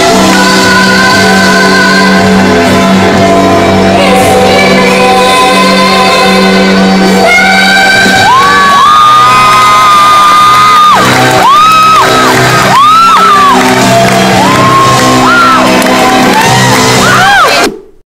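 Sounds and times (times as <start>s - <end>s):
woman singing into microphone: 0.0s - 2.8s, 3.8s - 8.6s
backing track: 0.0s - 17.7s.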